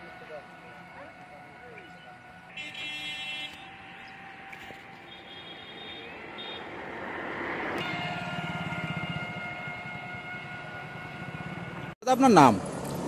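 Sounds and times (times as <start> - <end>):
engine whine: 0.0 - 13.0
motor vehicle passing: 0.0 - 13.0.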